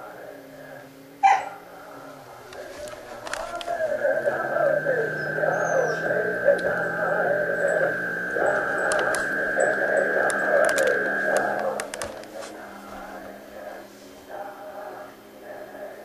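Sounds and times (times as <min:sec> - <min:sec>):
wavering chant-like sound: 0:00.0 - 0:16.0
clicks: 0:02.5 - 0:12.6
radio high whistle: 0:03.0 - 0:12.3.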